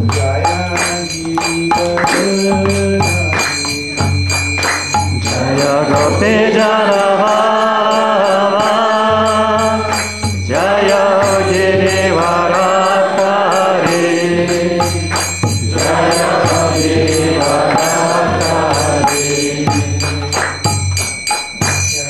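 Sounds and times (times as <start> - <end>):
man singing a chant: 0.0 - 20.4
small brass hand cymbals: 0.0 - 22.0.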